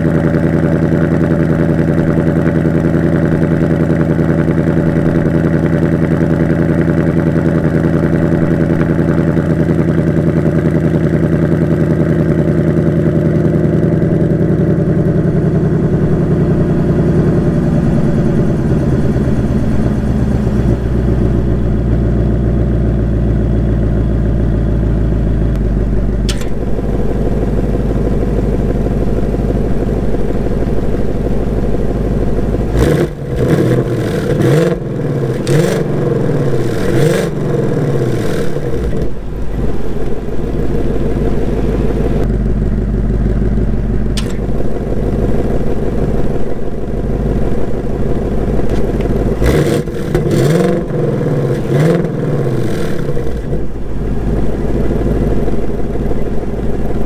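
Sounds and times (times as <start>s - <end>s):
car engine idling: 0.0s - 57.0s
engine revving: 0.0s - 57.0s.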